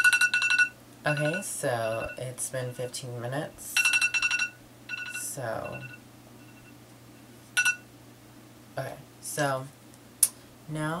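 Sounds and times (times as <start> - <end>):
smartphone beep: 0.0 - 2.2, 3.8 - 6.8, 7.6 - 7.8
faint steady hum: 0.0 - 11.0.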